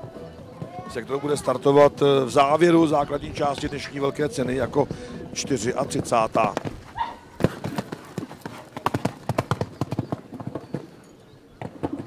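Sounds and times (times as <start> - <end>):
horse hoofbeats on sand: 0.0 - 12.0.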